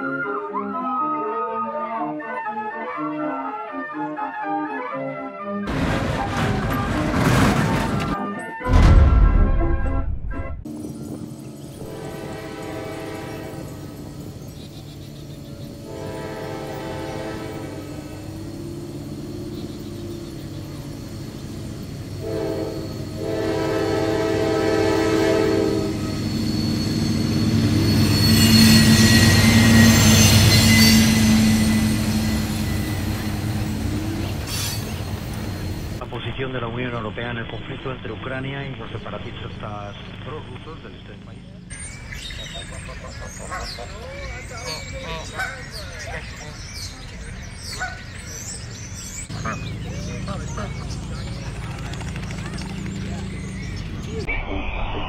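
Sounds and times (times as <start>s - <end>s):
train running past: 10.7s - 54.3s
train horn blasts: 11.8s - 14.1s, 15.7s - 18.4s, 22.1s - 34.3s.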